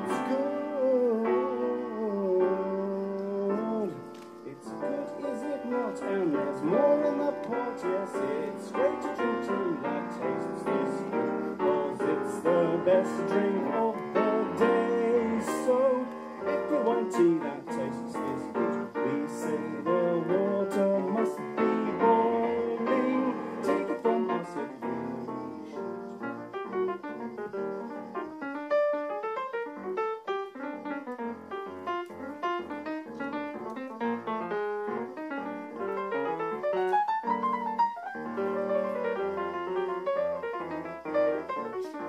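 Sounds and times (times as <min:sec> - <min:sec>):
solo jazz piano: 0:00.0 - 0:42.0.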